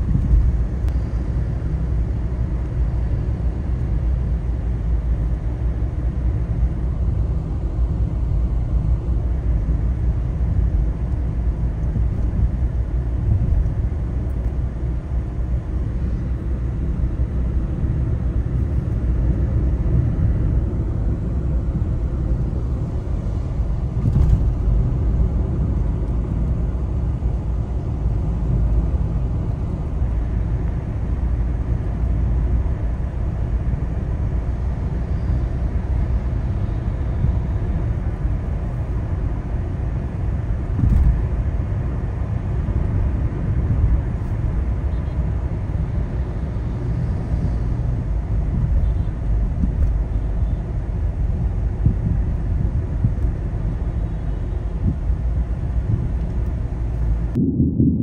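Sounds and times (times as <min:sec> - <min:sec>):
car road and engine rumble: 0:00.0 - 0:58.0.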